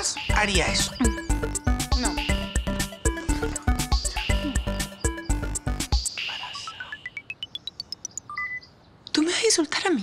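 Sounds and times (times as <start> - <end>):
rising electronic blips: 7.0 - 8.4.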